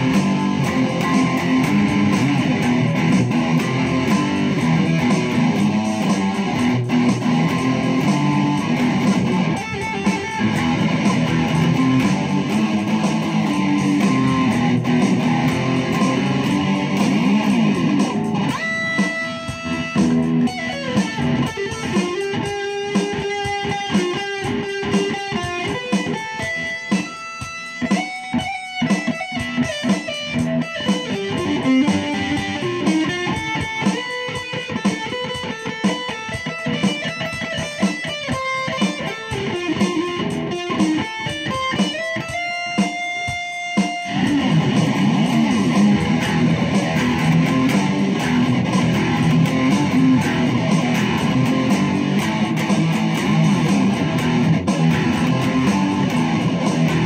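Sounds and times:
heavy metal electric guitar: 0.0 - 57.0.

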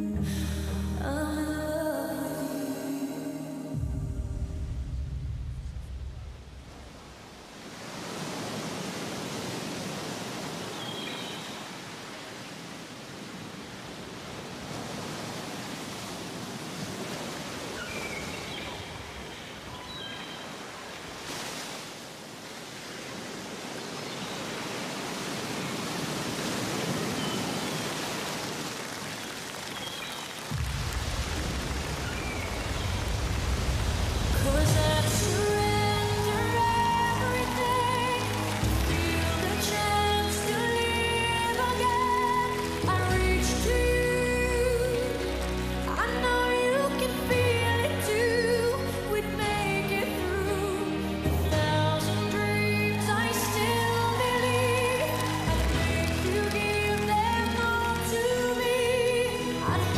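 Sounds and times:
low music bass: 0.0 - 1.8, 3.8 - 7.0
ocean waves washing: 0.0 - 59.9.

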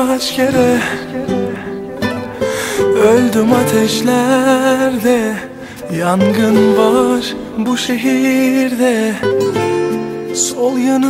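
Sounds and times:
person singing: 0.0 - 11.0.

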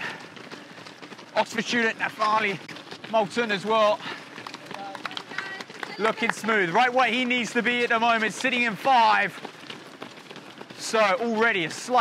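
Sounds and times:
runners' footsteps on pavement: 0.0 - 12.0.

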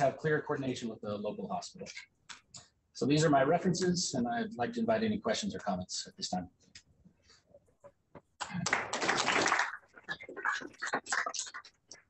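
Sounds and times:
audience applause: 8.4 - 9.9.

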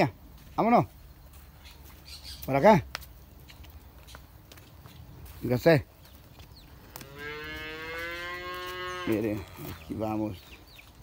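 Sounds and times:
cow mooing: 7.0 - 9.9.

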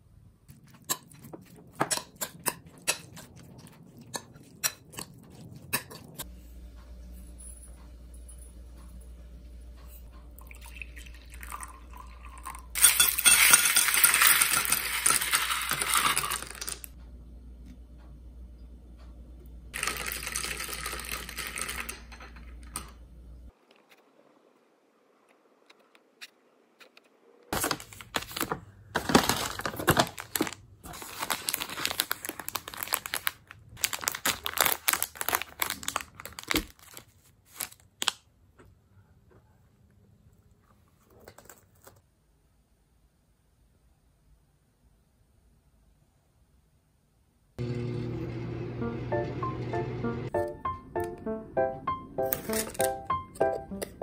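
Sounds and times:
water pouring into glass mug: 10.4 - 13.2
ice cubes clinking against glass: 11.5 - 16.9, 19.8 - 22.8
plastic wrapper crinkling: 27.6 - 38.2, 52.2 - 53.0.

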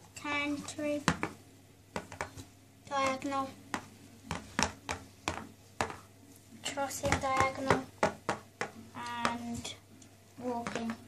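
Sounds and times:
toy hooves tapping on board: 1.1 - 1.4, 2.0 - 2.4, 3.0 - 6.0, 7.0 - 9.6, 10.4 - 11.0.

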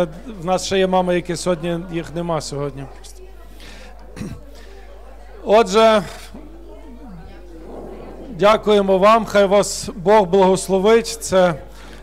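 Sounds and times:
murmur of voices: 0.0 - 12.0
steady low hum: 6.9 - 10.0.

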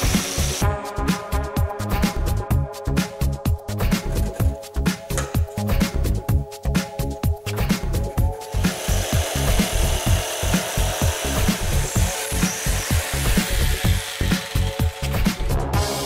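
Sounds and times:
jigsaw rasping through board: 8.4 - 16.0.

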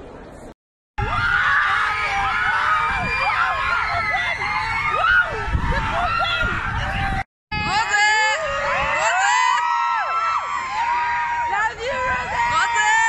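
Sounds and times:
crowd of fans screaming: 1.0 - 13.0.

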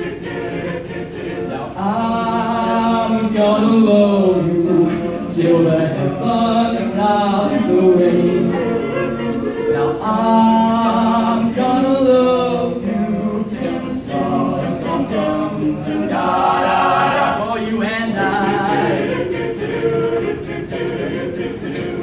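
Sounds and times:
male a cappella group singing: 0.0 - 22.0.

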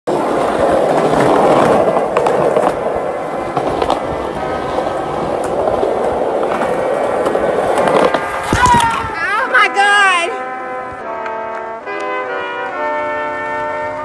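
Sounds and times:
skateboard wheels rolling on concrete: 0.0 - 14.0
skateboard clicks and knocks: 0.1 - 9.2.

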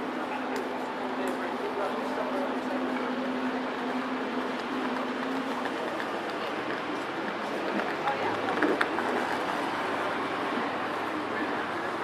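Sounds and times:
indistinct voices of passers-by: 0.0 - 12.0
steady background hum: 0.0 - 12.0.

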